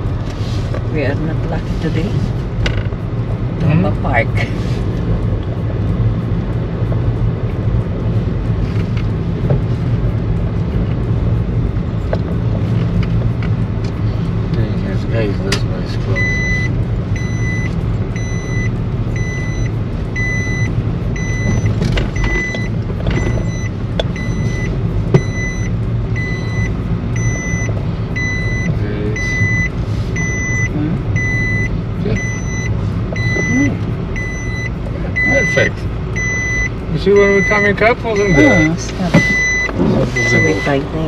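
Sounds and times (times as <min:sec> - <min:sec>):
car engine and road rumble: 0:00.0 - 0:41.0
reversing beeper beeps: 0:16.2 - 0:40.8.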